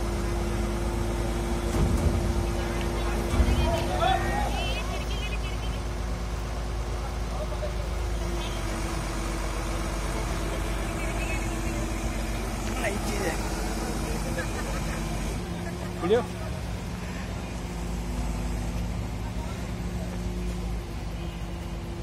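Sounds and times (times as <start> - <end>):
crane diesel engine running: 0.0 - 22.0
workers' voices: 0.0 - 22.0.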